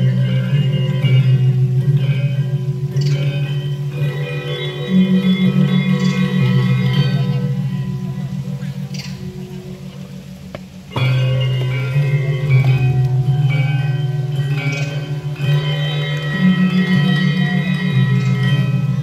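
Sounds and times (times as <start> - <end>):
low ringing gong tones: 0.0 - 19.0
metallophones playing struck notes: 0.0 - 19.0.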